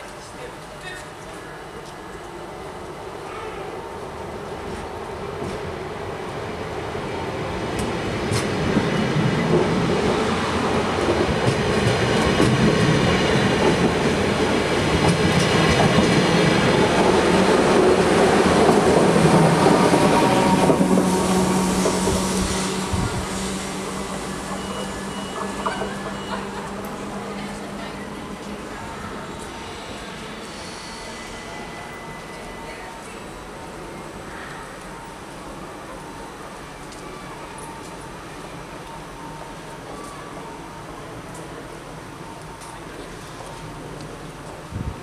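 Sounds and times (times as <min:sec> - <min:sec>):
electric train passing: 0:00.1 - 0:45.0.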